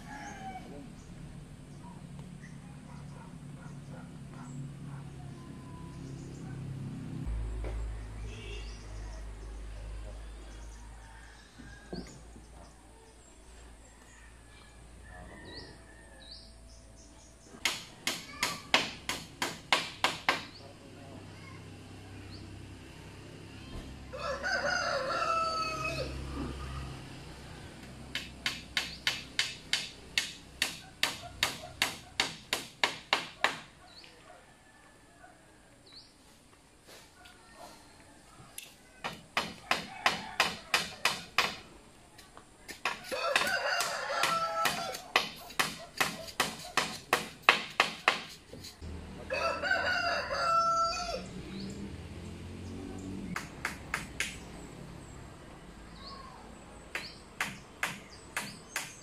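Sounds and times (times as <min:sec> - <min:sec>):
rooster crowing: 0:00.0 - 0:00.9, 0:10.6 - 0:12.2, 0:13.9 - 0:16.5, 0:24.1 - 0:27.7, 0:34.4 - 0:35.6, 0:39.6 - 0:41.0, 0:43.0 - 0:45.2, 0:49.2 - 0:51.4
hammer blows on bamboo: 0:17.6 - 0:20.6, 0:28.1 - 0:33.7, 0:39.0 - 0:41.7, 0:42.7 - 0:48.8, 0:56.9 - 0:59.0.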